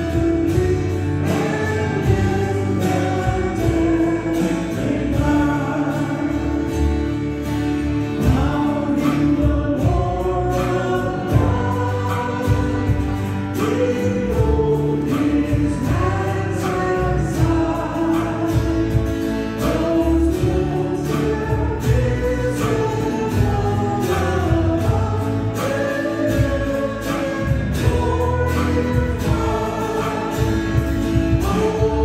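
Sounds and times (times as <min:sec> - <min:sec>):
drum kit steady beat: 0:00.0 - 0:32.0
group singing a hymn: 0:00.0 - 0:32.0
guitar: 0:00.0 - 0:32.0.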